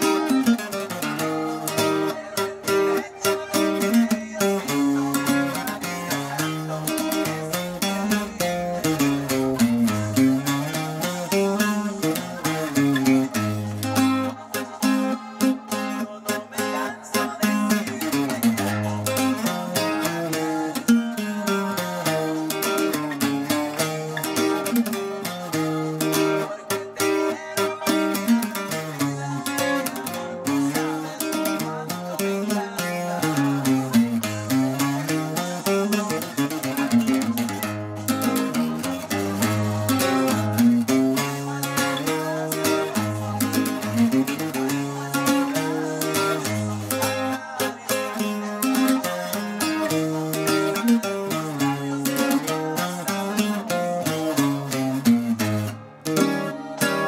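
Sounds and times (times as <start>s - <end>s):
guitar strummed with pick: 0.0s - 57.0s.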